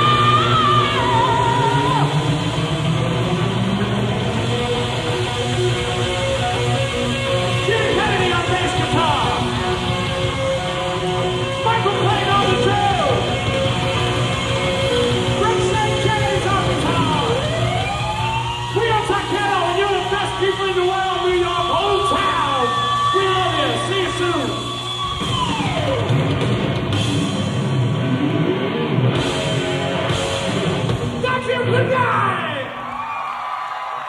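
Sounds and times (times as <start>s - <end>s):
electric guitar: 0.0s - 20.5s, 21.1s - 33.2s
hard rock band playing: 0.0s - 33.0s.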